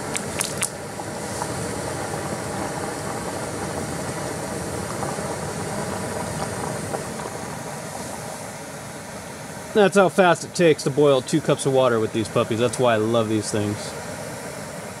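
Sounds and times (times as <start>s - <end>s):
stove burner hissing: 0.0s - 15.0s
water boiling: 0.0s - 15.0s.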